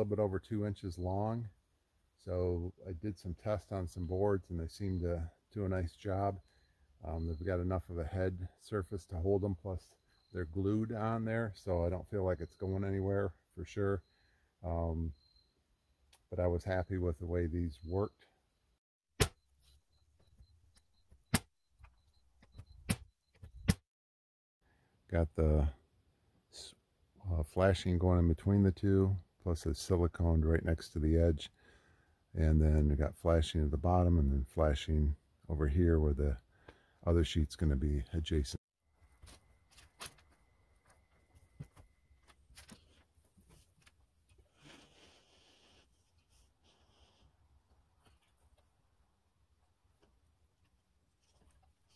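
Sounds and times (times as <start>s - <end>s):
soft rustle: 39.0s - 48.9s, 49.9s - 51.9s.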